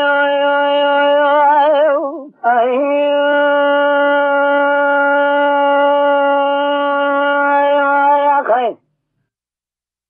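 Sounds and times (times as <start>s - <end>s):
man singing a long held note: 0.0s - 2.0s, 2.7s - 8.5s.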